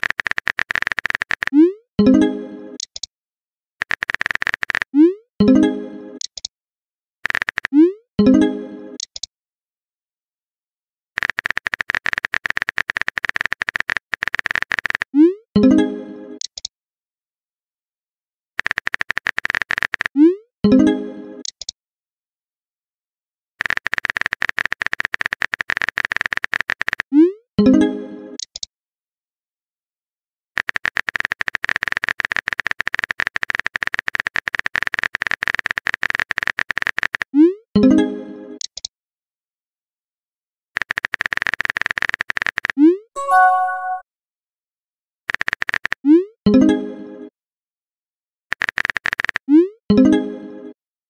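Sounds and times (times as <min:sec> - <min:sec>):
keyboard typing clicks: 0:00.0 - 0:01.6, 0:02.8 - 0:03.1, 0:03.8 - 0:04.9, 0:06.2 - 0:06.5, 0:07.2 - 0:07.8, 0:09.0 - 0:09.3, 0:16.4 - 0:16.7, 0:40.8 - 0:44.0
phone keyboard typing clicks: 0:00.0 - 0:01.6, 0:02.8 - 0:03.1, 0:03.8 - 0:04.9, 0:06.2 - 0:06.5, 0:07.2 - 0:07.8, 0:09.0 - 0:09.3, 0:11.2 - 0:15.1, 0:16.4 - 0:16.7, 0:18.6 - 0:20.1, 0:23.6 - 0:27.0, 0:30.6 - 0:37.3, 0:40.8 - 0:44.0, 0:45.3 - 0:46.0, 0:48.5 - 0:49.4.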